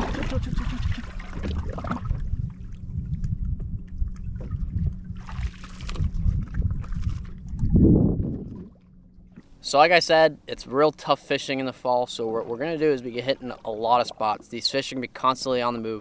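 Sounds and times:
water splashing: 0.0 - 3.3, 4.0 - 9.6, 10.6 - 15.6
wind rumble on microphone: 0.0 - 9.5.

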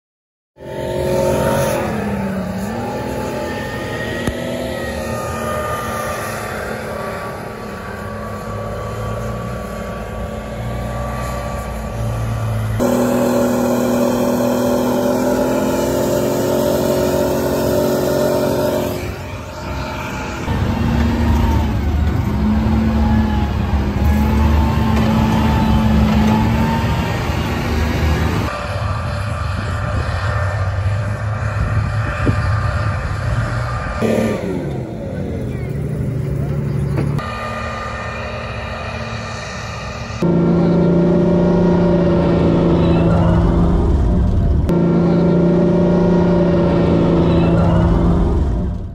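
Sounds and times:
tracked vehicle engines running: 0.6 - 48.9.

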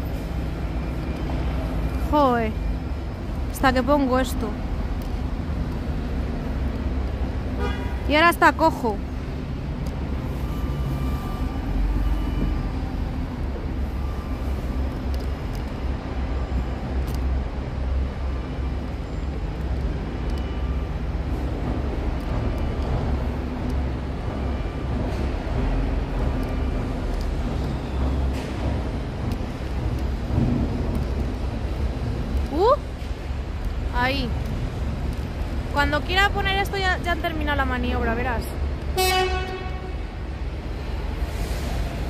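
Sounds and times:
construction machinery: 0.0 - 42.0
road traffic rumble: 0.0 - 42.0.

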